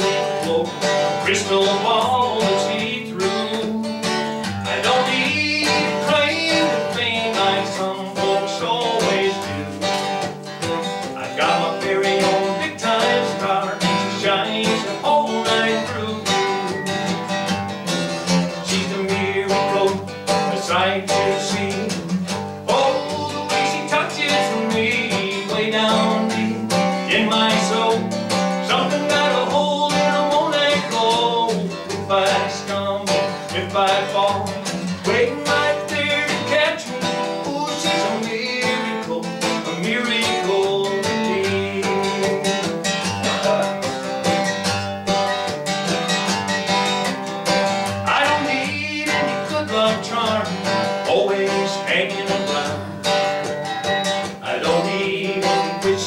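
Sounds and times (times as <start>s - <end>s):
acoustic guitar strumming: 0.0s - 56.0s
man singing country song: 0.0s - 56.0s.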